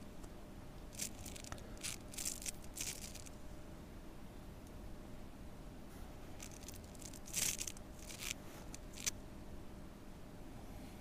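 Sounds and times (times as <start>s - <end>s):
crisp rustles: 0.9s - 3.4s, 6.4s - 9.1s.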